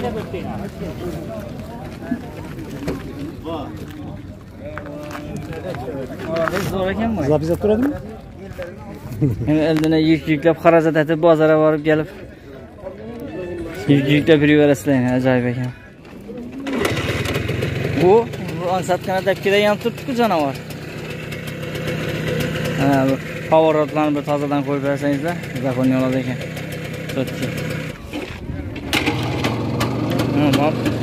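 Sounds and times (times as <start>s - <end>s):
motorcycle engine starting and running: 16.4s - 31.0s.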